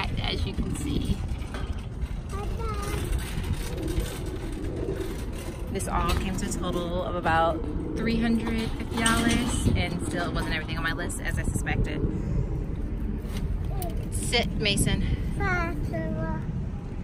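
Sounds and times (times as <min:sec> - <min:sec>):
shopping cart wheels rolling on asphalt: 0:00.0 - 0:11.6
young children's voices: 0:02.2 - 0:03.4, 0:15.4 - 0:16.6.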